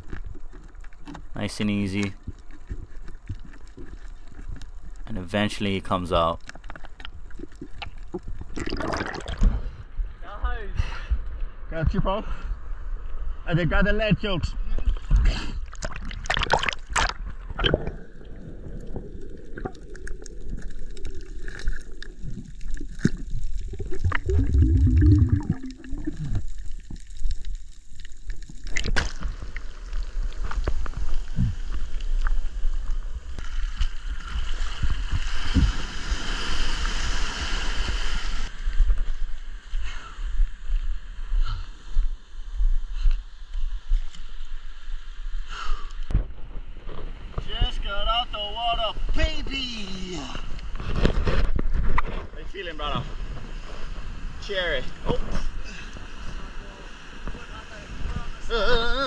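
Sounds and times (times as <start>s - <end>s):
waves washing and sloshing: 15.6s - 27.0s, 28.7s - 38.6s, 53.0s - 58.6s.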